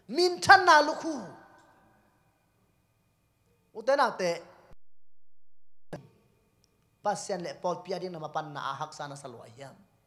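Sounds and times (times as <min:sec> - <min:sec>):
faint steady hum: 0:00.0 - 0:04.8, 0:06.0 - 0:10.0.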